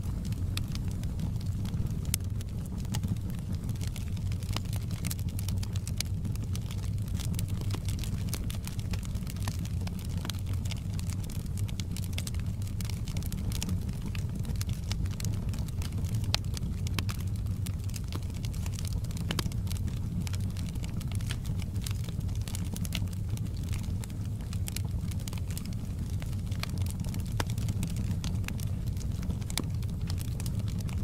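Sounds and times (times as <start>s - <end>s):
crackles and pops from logs: 0.0s - 31.0s
low rumble of flame: 0.0s - 31.0s.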